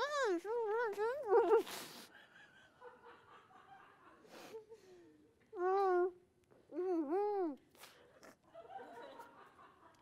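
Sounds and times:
woman's muffled voice: 0.0 - 1.7.

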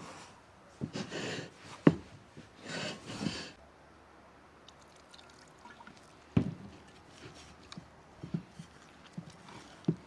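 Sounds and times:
dough kneading thumps: 6.3 - 10.0.

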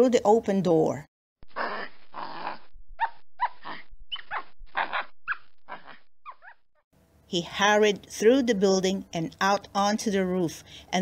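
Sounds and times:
breathy rasping animal bursts: 1.5 - 2.6
short high animal calls: 1.6 - 6.6.

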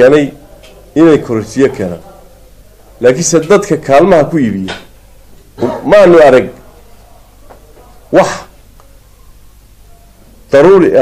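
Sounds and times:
man speaking: 0.0 - 4.8, 5.6 - 6.9, 8.0 - 8.6, 10.5 - 11.0.

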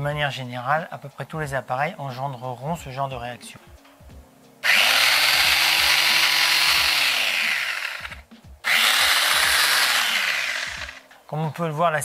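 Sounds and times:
electric sander motor whining: 4.6 - 11.0.

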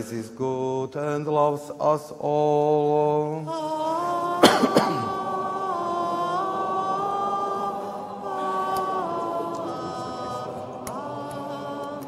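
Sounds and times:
congregation singing chant: 0.0 - 12.0
sharp cough: 4.4 - 5.2.

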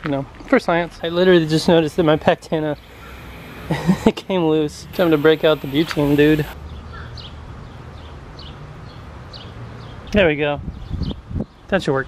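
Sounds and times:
high bird chirps: 2.7 - 4.0.

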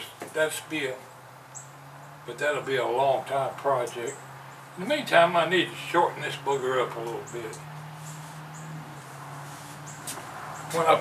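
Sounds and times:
high bird chirps: 7.2 - 8.8.

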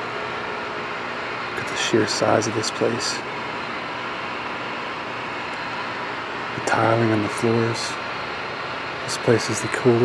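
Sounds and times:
faint hum of neon lights: 0.0 - 10.0.

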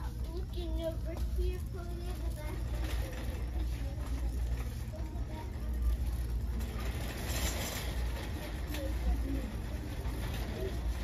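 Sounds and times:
faint voices: 0.0 - 11.0
shopping cart wheels rumbling: 0.0 - 11.0.

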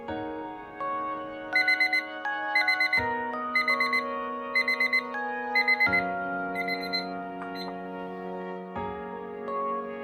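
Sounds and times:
soft background music: 0.0 - 10.0
digital timer beeping: 1.6 - 7.8.

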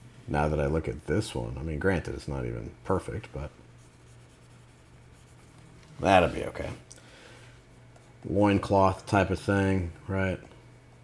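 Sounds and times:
low steady hum: 0.0 - 11.0
stylus scratching on tablet: 3.7 - 6.7.

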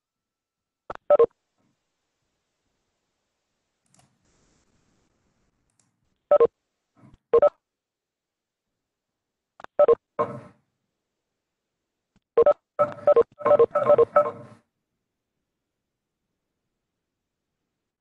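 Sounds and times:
short electronic beeps: 12.4 - 14.4.

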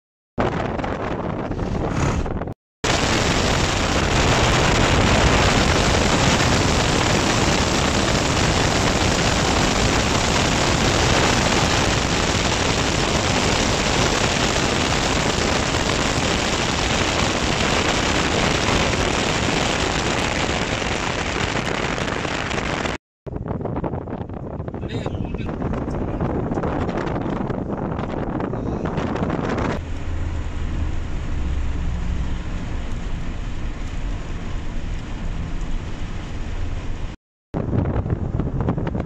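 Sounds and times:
road noise: 0.4 - 39.0
wind buffeting microphone: 0.4 - 39.0
wind rush from moving car: 0.4 - 39.0.

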